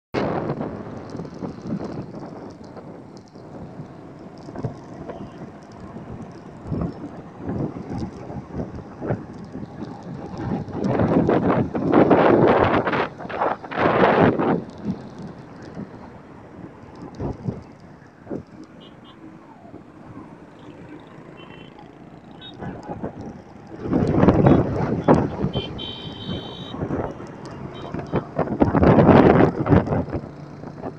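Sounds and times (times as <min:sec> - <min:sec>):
road traffic: 0:00.2 - 0:30.9
wind buffeting microphone: 0:00.2 - 0:30.9.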